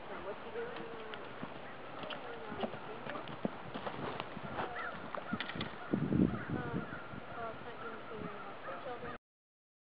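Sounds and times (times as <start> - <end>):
horse hoofbeats on sand: 0.2 - 5.6.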